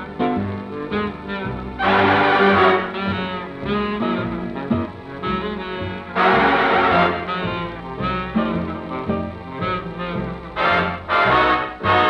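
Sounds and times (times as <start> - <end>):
swing big-band music with brass: 0.0 - 12.0.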